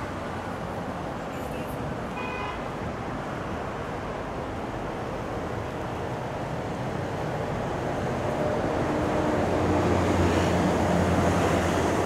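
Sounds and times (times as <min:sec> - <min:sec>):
city traffic rush: 0:00.0 - 0:12.0.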